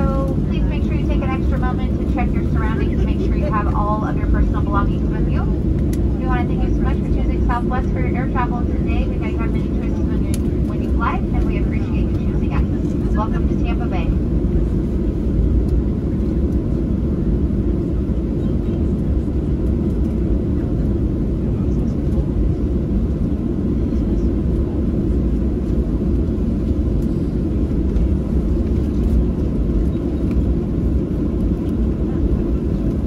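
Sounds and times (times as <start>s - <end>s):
airplane cabin rumble while taxiing: 0.0s - 33.0s.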